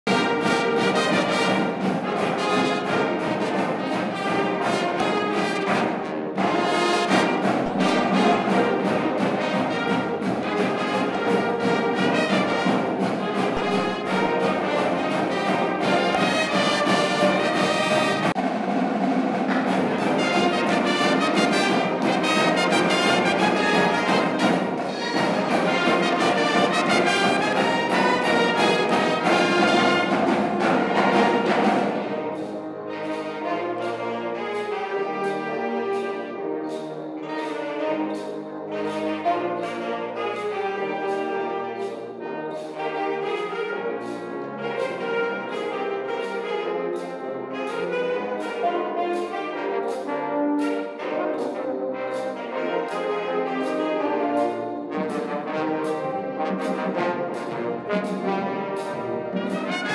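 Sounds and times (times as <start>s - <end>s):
marching band playing: 0.0s - 59.9s.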